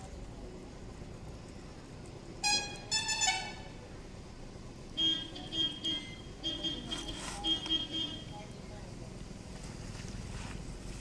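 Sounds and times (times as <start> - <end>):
horn tooting: 2.4 - 3.8, 5.0 - 8.4
short high-pitched beeps: 5.0 - 8.3.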